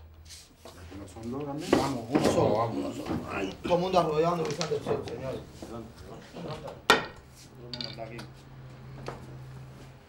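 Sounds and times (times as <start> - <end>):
low voices murmuring: 0.8 - 8.4.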